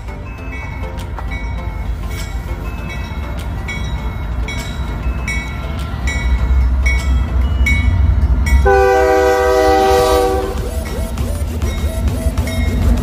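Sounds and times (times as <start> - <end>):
locomotive engine rumble: 0.0 - 13.0
train air horn chord: 8.6 - 12.9.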